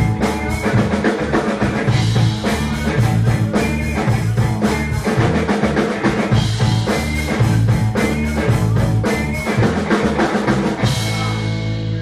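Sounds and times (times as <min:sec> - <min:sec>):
drum kit: 0:00.0 - 0:12.0
live rock band playing: 0:00.0 - 0:12.0.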